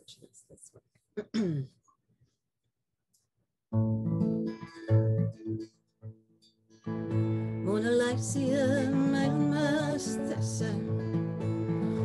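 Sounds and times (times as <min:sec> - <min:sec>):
acoustic guitar notes: 0:03.7 - 0:12.0.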